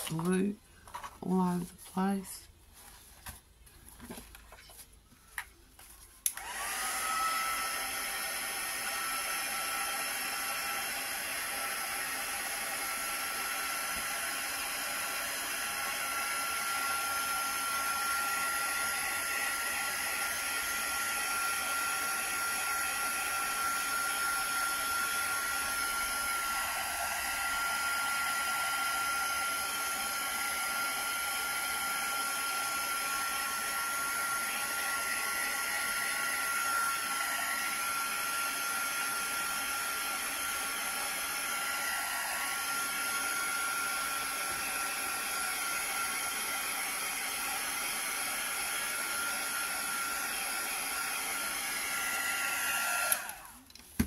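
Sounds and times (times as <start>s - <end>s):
heat tool blowing air: 6.3s - 53.6s.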